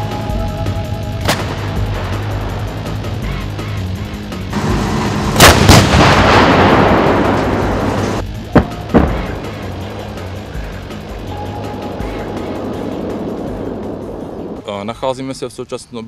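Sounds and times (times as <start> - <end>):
long rolling echo: 0.0 - 15.0
howitzers firing: 1.2 - 14.7.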